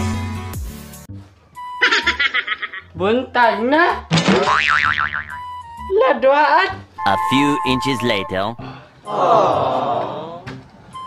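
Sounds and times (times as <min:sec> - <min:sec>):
cartoon boing sound effect: 0:04.4 - 0:05.5
thin steady tone: 0:07.0 - 0:08.6.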